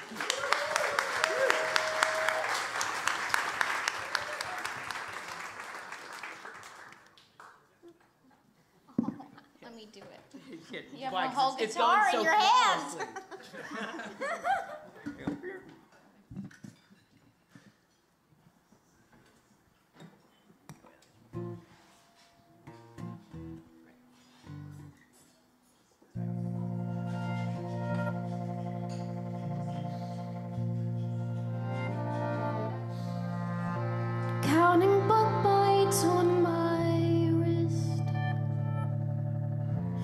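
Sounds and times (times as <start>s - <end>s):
isolated instrument notes: 21.3s - 40.0s
acoustic guitar picking: 21.4s - 25.2s, 26.2s - 32.3s
sustained low notes: 26.2s - 40.0s
woman singing: 34.4s - 38.1s.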